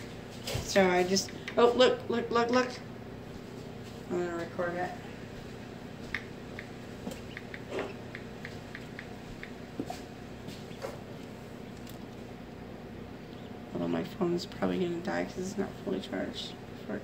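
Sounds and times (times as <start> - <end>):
steady low hum: 0.0 - 17.0
hatchling peeping: 6.1 - 9.6, 10.6 - 12.1, 12.9 - 13.9.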